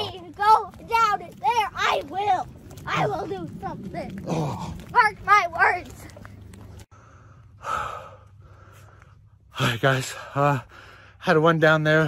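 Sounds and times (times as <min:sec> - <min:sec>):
man gasping for breath: 0:06.9 - 0:09.1.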